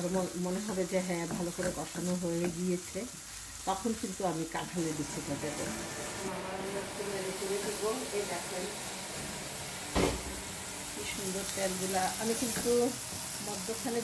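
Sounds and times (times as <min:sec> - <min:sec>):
paste sizzling in a wok: 0:00.0 - 0:14.0
wooden spatula scraping wok: 0:04.5 - 0:14.0.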